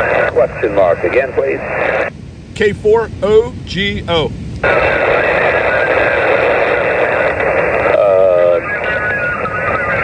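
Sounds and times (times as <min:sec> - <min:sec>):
weak voice over radio: 0:00.0 - 0:03.0, 0:03.7 - 0:10.0
radio band noise hiss: 0:00.0 - 0:10.0.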